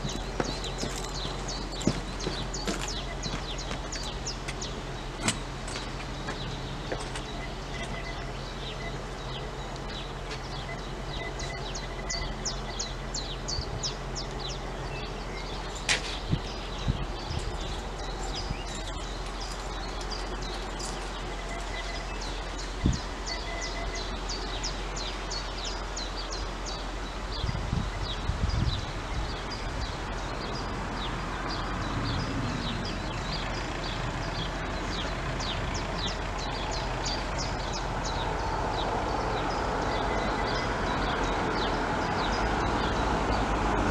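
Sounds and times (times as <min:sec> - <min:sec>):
low rumbling: 0:00.0 - 0:43.9
small songbirds chirping: 0:00.0 - 0:43.9.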